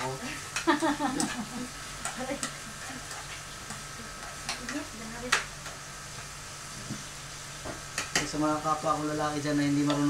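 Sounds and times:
chicken sizzling in frying pan: 0.0 - 10.0
spatula stirring in pan: 0.3 - 7.1.

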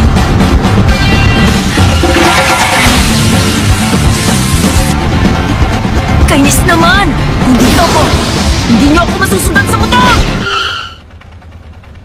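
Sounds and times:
car tyre squeal skidding: 10.3 - 11.0.

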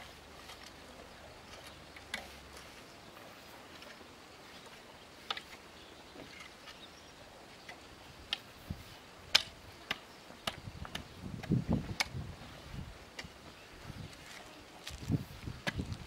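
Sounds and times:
rake scraping through soil: 0.0 - 5.6
rake tines clicking on stones: 14.1 - 16.0.

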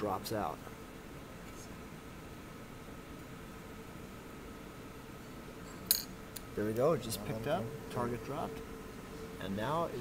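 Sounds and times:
faint steady hiss: 0.0 - 10.0
thin steady hum: 0.0 - 10.0.

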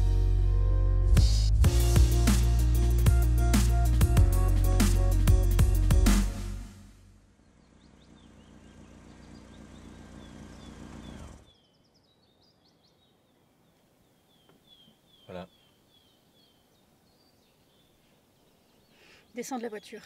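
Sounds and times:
car engine and tyres: 6.4 - 12.0
bird chirping: 7.3 - 20.0.

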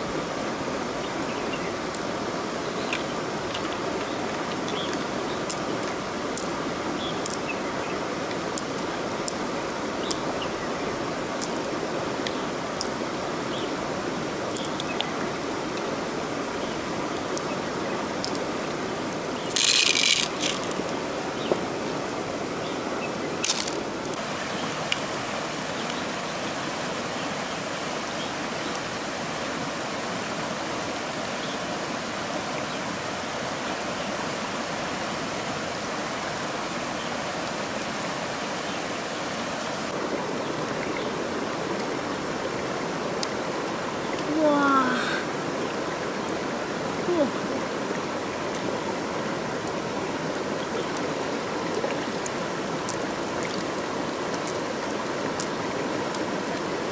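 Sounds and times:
water rushing over rocks: 0.0 - 56.9.

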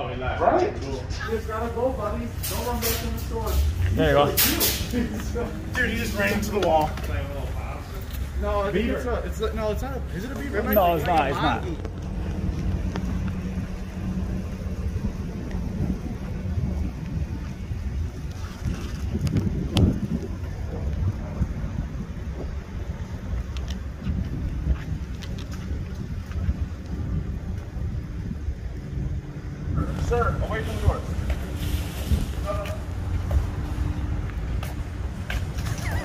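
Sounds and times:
wind on microphone: 11.7 - 36.0.

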